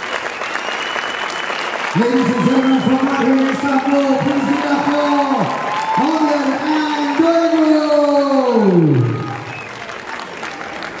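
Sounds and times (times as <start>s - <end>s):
audience applause: 0.0s - 11.0s
man announcing call: 1.9s - 9.6s.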